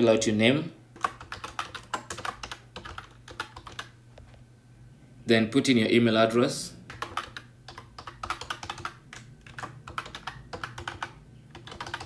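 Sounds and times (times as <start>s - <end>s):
typing on computer keyboard: 1.0s - 3.9s, 6.9s - 12.0s.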